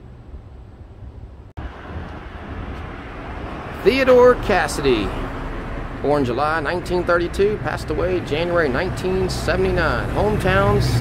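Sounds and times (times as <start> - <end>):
street rumble: 0.0 - 11.0.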